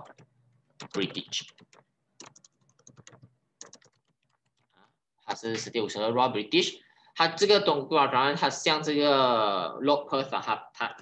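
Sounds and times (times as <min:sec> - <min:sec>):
faint keyboard keystrokes: 0:00.0 - 0:05.0.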